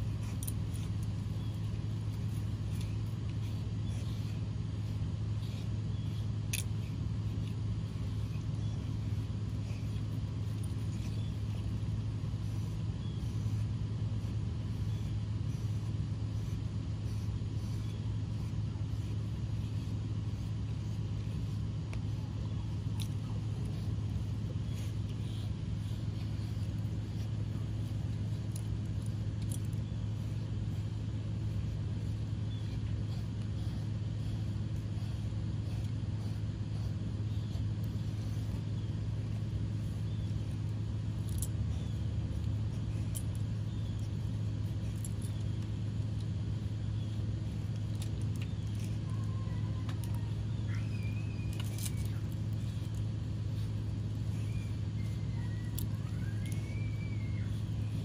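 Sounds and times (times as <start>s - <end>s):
low mechanical hum: 0.0s - 58.0s.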